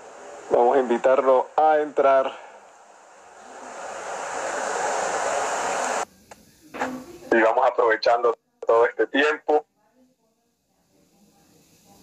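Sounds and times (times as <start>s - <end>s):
steady rushing hiss: 0.0s - 9.6s, 10.4s - 12.0s.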